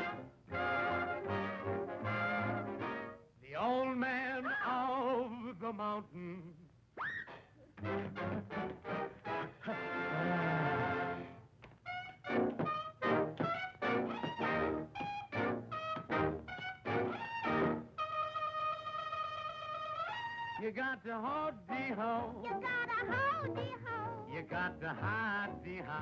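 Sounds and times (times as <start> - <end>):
jazz brass section playing chords: 0.0 - 3.2, 7.8 - 18.5.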